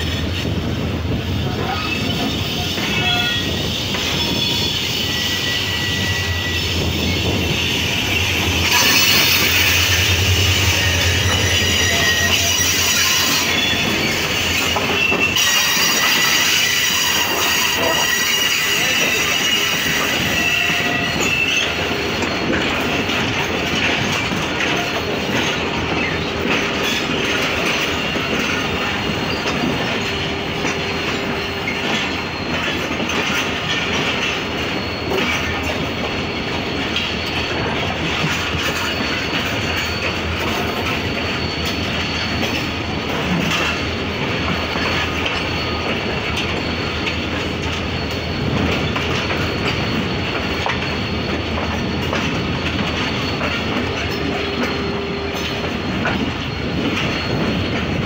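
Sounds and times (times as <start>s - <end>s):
train wheels rumbling on track: 0.0s - 58.0s.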